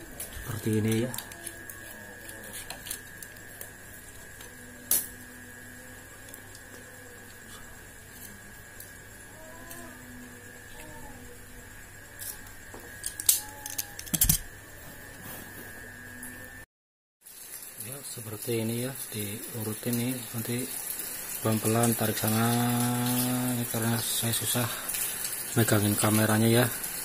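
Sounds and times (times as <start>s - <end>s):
faint high whine: 0.0s - 16.7s, 17.3s - 27.0s.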